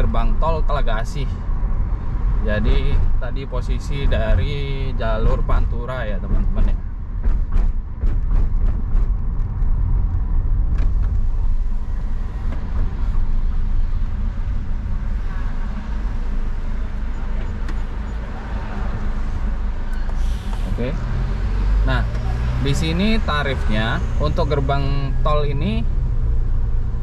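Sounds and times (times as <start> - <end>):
car engine and tyre rumble: 0.0 - 27.0.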